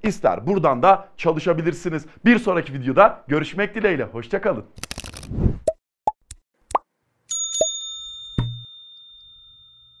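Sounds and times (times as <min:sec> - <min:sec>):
bell-like ding: 0:07.3 - 0:10.0.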